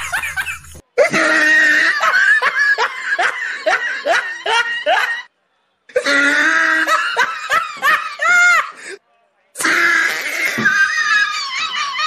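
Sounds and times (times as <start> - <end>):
person laughing in bursts: 0.0 - 5.3.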